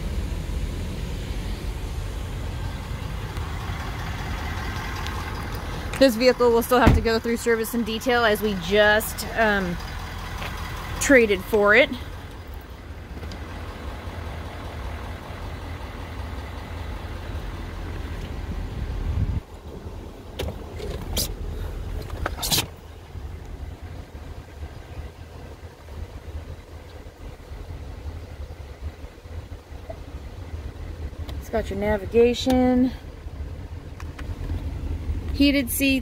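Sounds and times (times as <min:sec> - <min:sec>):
diesel engine idling: 0:00.0 - 0:36.0.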